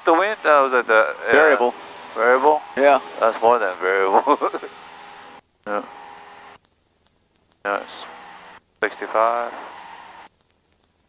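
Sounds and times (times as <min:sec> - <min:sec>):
man speaking: 0:00.0 - 0:04.7, 0:05.7 - 0:05.9, 0:07.7 - 0:08.1, 0:08.8 - 0:09.6.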